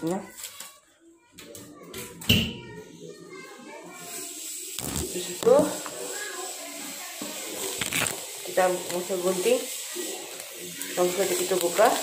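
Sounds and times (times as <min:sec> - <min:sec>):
child's indistinct voice: 0:00.0 - 0:07.8, 0:08.6 - 0:12.0
steady hiss: 0:03.9 - 0:11.8.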